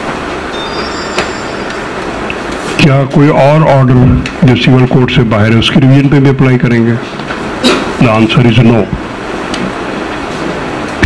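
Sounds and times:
steady background noise: 0.0s - 11.0s
faint high tones: 0.5s - 2.0s.

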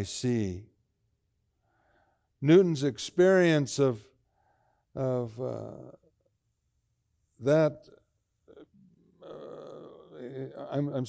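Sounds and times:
man's low rough vocal sound: 8.5s - 10.7s.

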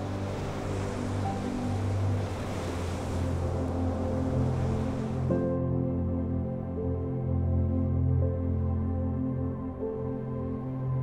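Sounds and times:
ocean surf washing on shore: 0.0s - 5.4s
slow ambient music: 0.0s - 11.0s.

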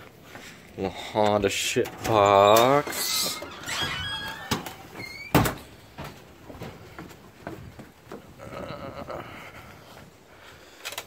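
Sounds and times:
door shutting thud: 2.0s - 6.2s.

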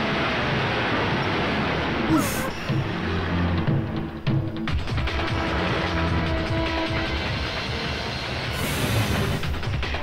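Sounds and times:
background music: 1.9s - 10.0s
high hiss: 8.5s - 9.5s.

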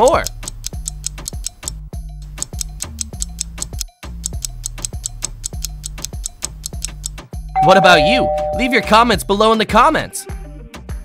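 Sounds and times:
clock-like ticking: 0.0s - 7.2s.

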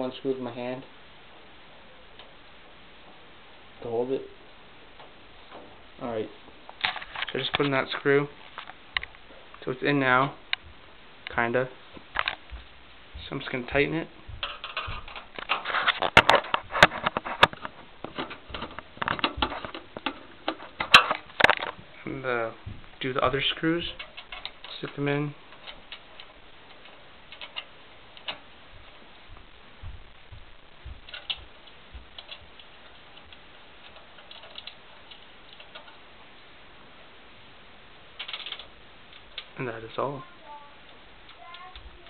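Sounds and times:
steady low hiss: 0.0s - 42.0s
screw clicking: 25.5s - 28.4s.

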